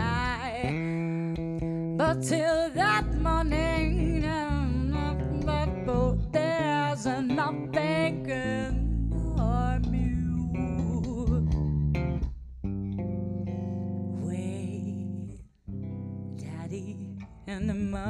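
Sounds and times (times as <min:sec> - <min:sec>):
woman singing wordless melody: 0:00.0 - 0:11.6, 0:14.1 - 0:15.5, 0:16.3 - 0:18.0
electric bass guitar: 0:00.0 - 0:18.0.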